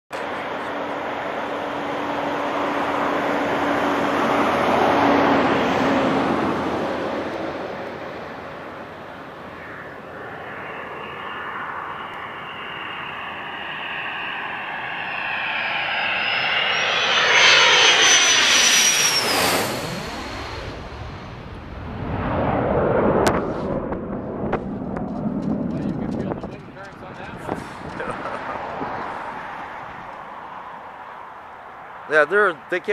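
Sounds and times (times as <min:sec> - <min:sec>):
fighter jet flying overhead: 0:00.1 - 0:32.9
jet engine high whistle: 0:08.6 - 0:26.2.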